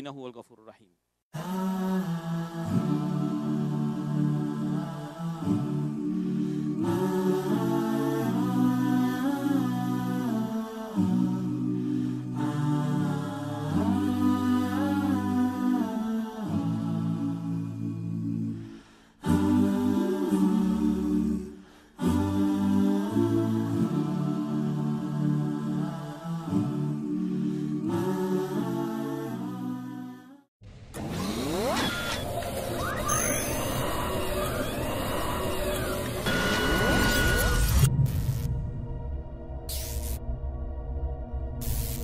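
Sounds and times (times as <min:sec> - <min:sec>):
voices humming held notes: 0:31.4 - 0:37.6.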